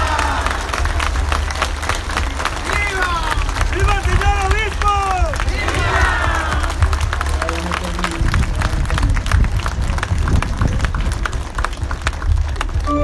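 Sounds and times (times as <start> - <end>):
crowd clapping: 0.0 - 13.0
low rumble: 0.0 - 13.0.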